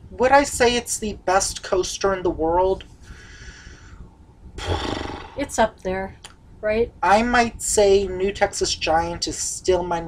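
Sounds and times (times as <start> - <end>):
faint breathing: 2.9 - 5.4
breathy exhale: 3.0 - 4.0.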